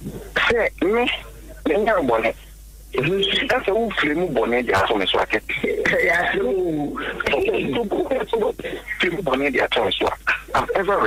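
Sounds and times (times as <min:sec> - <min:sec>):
man talking over phone: 0:00.4 - 0:11.0.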